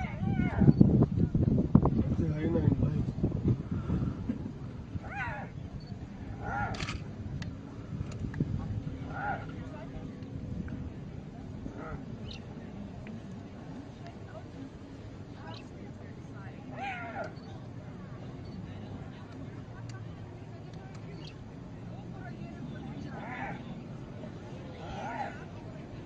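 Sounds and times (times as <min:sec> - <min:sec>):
low background rumble: 0:00.0 - 0:26.0
hyena distress cry: 0:06.3 - 0:06.8.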